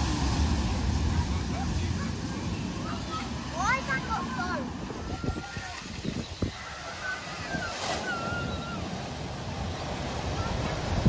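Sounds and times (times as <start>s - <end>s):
water splashing: 0.0s - 11.0s
wind on microphone: 4.4s - 11.0s.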